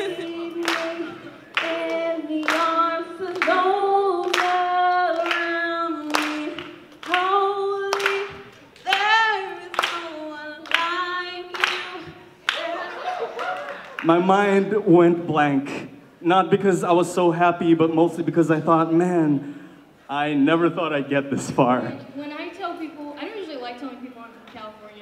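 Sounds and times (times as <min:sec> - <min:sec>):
audience clapping along: 0:00.0 - 0:14.6
person singing worship song: 0:00.0 - 0:15.9.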